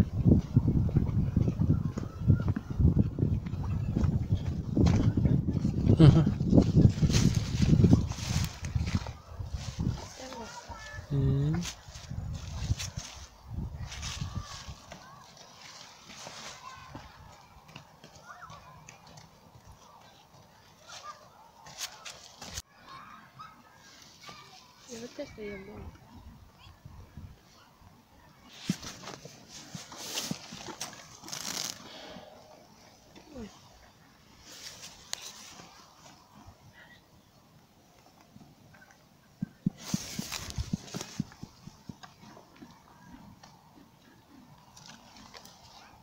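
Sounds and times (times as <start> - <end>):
grass rustling: 6.0 - 18.2, 19.8 - 22.7, 28.4 - 36.6, 39.6 - 43.5
horse chewing grass: 28.5 - 33.2, 39.4 - 46.0
hoof steps on mud: 39.4 - 46.0.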